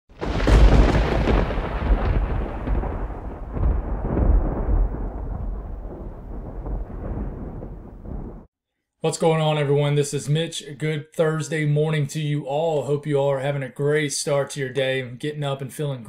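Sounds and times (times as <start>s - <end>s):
thunder crack and rumble: 0.1s - 8.5s.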